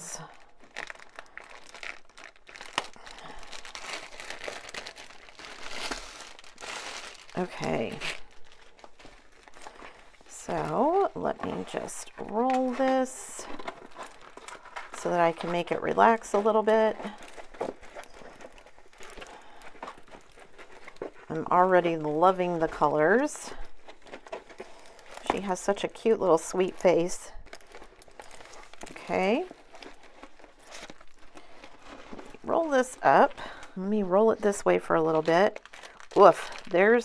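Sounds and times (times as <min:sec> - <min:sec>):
canvas rustling: 0:00.0 - 0:37.0
plastic sleeve crinkling: 0:00.0 - 0:37.0.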